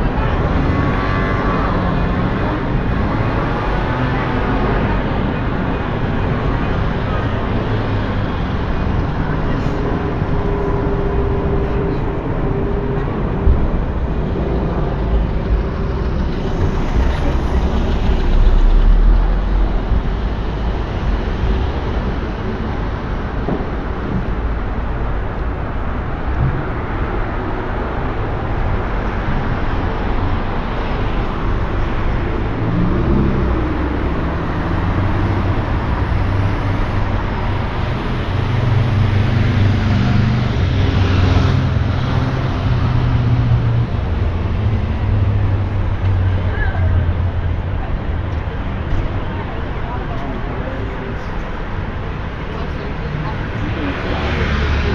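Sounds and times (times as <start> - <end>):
deep engine rumble: 0.0 - 54.9
vehicles passing: 0.0 - 54.9.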